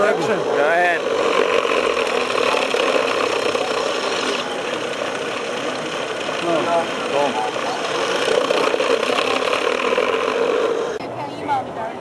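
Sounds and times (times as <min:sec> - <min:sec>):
robot motors and gearing running: 0:00.0 - 0:11.0.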